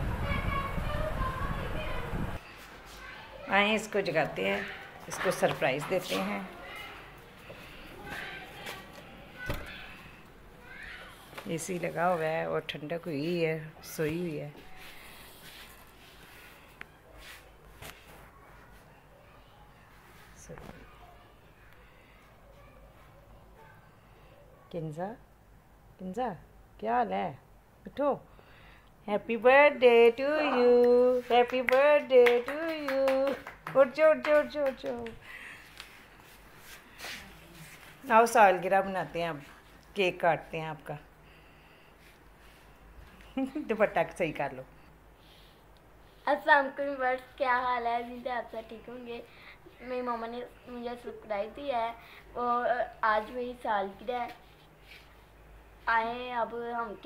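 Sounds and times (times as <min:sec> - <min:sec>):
rustling of blankets and clothes: 0:00.2 - 0:23.4, 0:29.8 - 0:40.8, 0:41.8 - 0:44.4.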